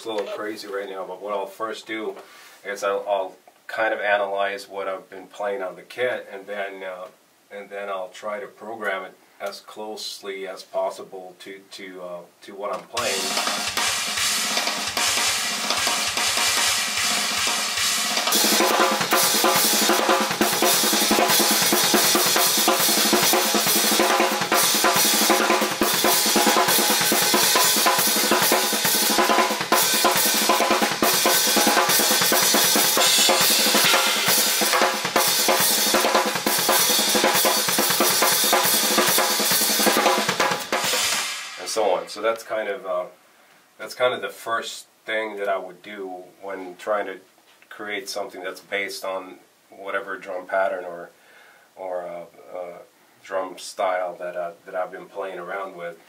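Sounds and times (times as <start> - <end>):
fast drum kit rhythm: 12.8 - 42.4.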